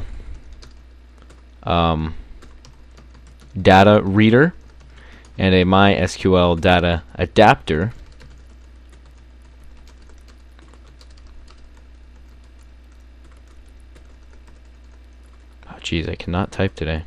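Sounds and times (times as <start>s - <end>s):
steady low hum: 0.0s - 17.0s
typing on computer keyboard: 2.4s - 3.6s, 8.0s - 15.7s.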